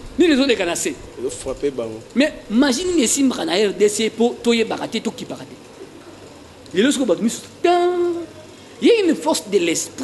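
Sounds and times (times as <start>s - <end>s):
man speaking: 0.2s - 5.7s, 6.7s - 10.0s.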